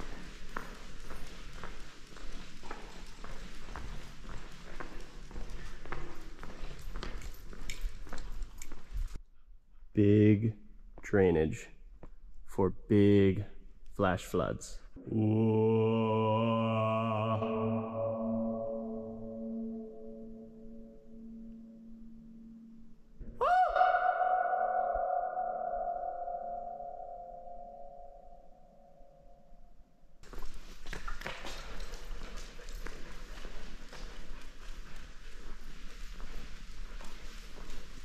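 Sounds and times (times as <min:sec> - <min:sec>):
man calling out in echoing pipe: 0:09.9 - 0:11.7, 0:12.5 - 0:15.4, 0:23.4 - 0:26.1.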